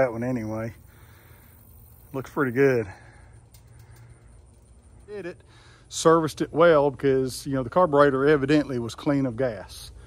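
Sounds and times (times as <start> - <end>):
faint ticks: 3.2 - 5.1.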